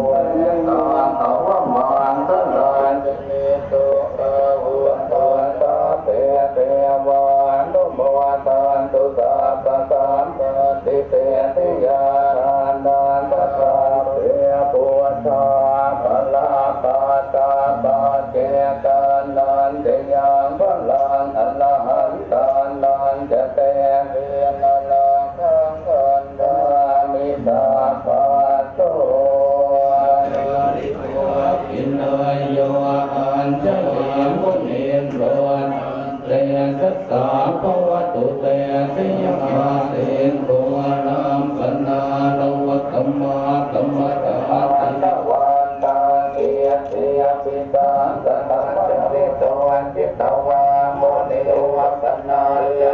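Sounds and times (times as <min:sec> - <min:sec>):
monks chanting in unison: 0:00.0 - 0:52.9.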